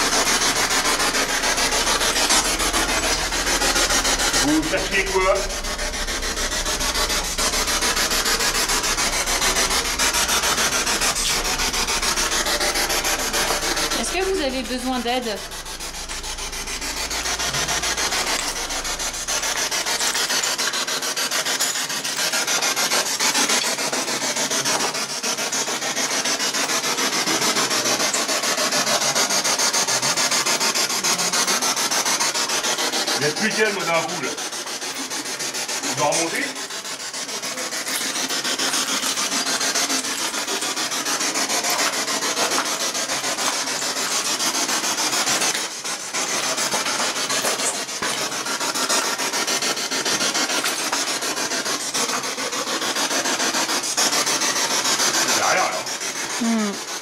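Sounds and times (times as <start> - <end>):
low hum: 0.0 - 20.6
fabric rubbing on microphone: 0.0 - 21.3, 29.3 - 57.0.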